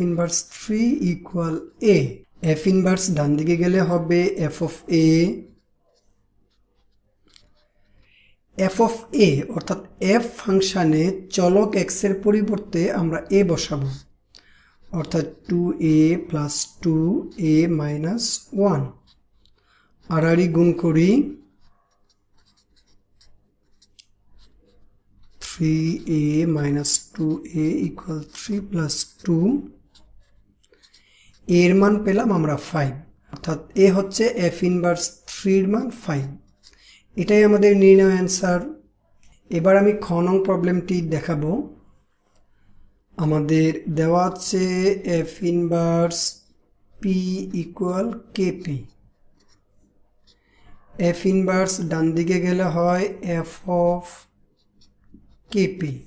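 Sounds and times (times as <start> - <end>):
man talking: 0.0 - 5.5, 8.6 - 14.1, 14.9 - 19.0, 20.1 - 21.4, 25.4 - 29.8, 31.4 - 36.4, 37.2 - 38.8, 39.5 - 41.8, 43.2 - 46.4, 47.0 - 48.9, 51.0 - 54.3, 55.5 - 56.0
marker pen writing on paper: 0.0 - 56.0.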